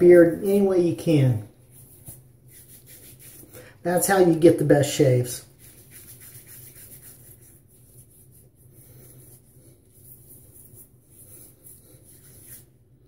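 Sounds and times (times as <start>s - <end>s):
low steady hum: 0.0s - 13.0s
hands rubbing wet stubble: 1.6s - 3.7s, 5.4s - 12.8s.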